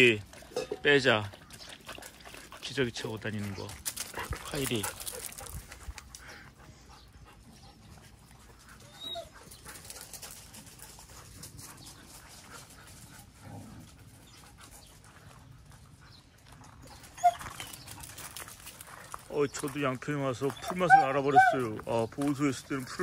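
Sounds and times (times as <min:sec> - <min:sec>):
faint dog sounds: 0:02.0 - 0:23.0.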